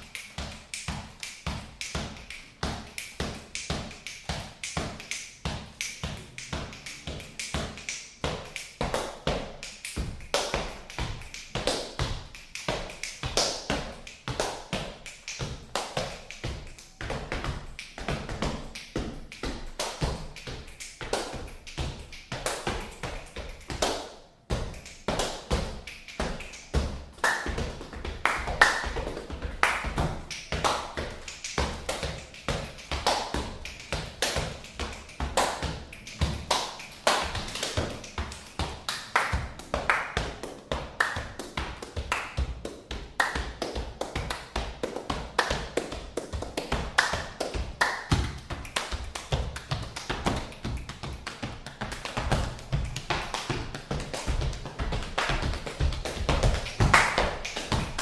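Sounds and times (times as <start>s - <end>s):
hand slaps and claps: 0.0s - 58.0s.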